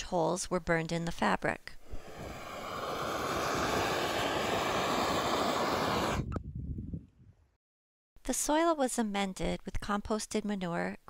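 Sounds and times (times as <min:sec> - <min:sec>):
gas torch flame rushing: 0:01.8 - 0:06.4.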